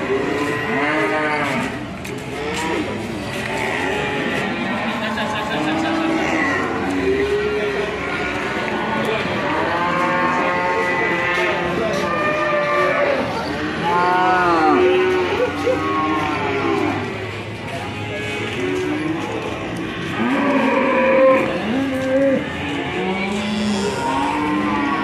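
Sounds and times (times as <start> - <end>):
cattle mooing: 0.0 - 1.8, 18.2 - 25.0.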